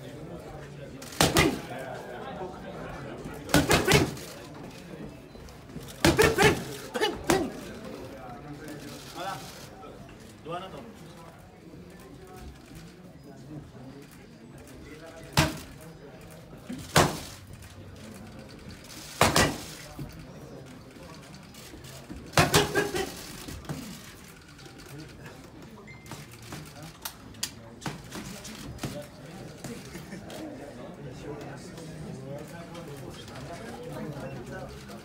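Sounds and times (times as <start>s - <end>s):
boxing gloves striking pads: 1.2s - 1.7s, 3.6s - 4.3s, 6.0s - 6.7s, 16.9s - 17.3s, 19.2s - 19.7s.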